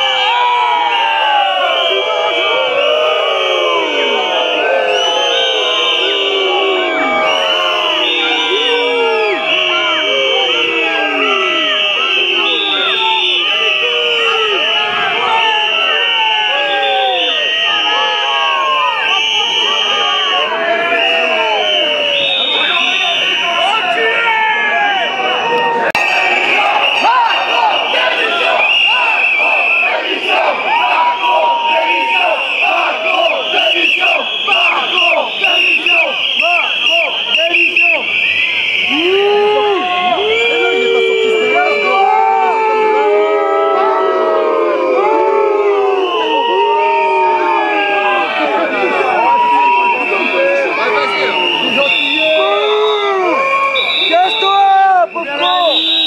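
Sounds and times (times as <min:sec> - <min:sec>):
crowd shouting and chanting: 0:00.0 - 0:56.0.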